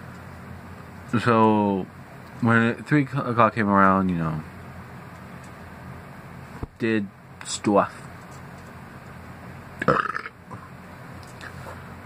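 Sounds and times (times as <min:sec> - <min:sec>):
man burping: 0:09.8 - 0:10.7.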